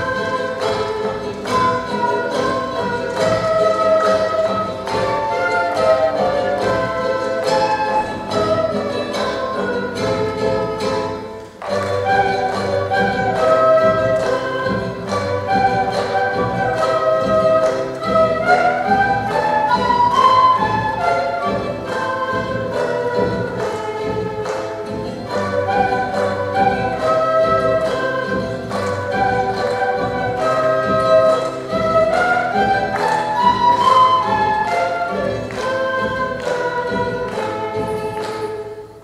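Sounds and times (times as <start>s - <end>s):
guitar and charango: 0.0s - 39.0s
quenas playing melody: 0.0s - 39.0s.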